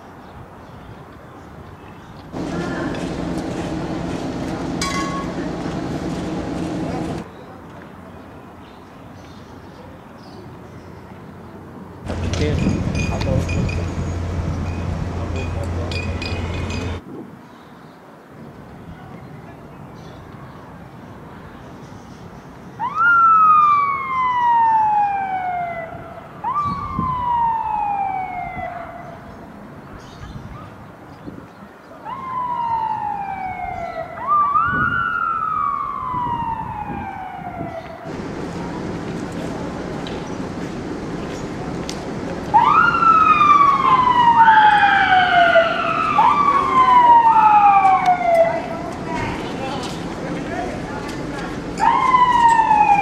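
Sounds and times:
police siren wailing: 22.8 - 29.2, 32.0 - 39.1, 42.5 - 48.9, 51.8 - 53.0.

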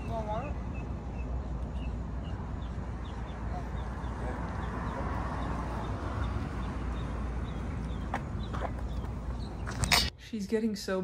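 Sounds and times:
bird chirping: 0.0 - 10.1.

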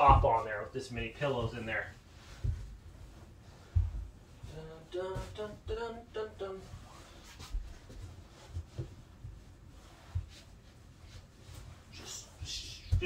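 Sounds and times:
dull thumps: 0.0 - 0.6, 1.4 - 6.2, 11.4 - 13.0
man's voice: 0.0 - 2.0
fabric rustling: 0.0 - 13.0.

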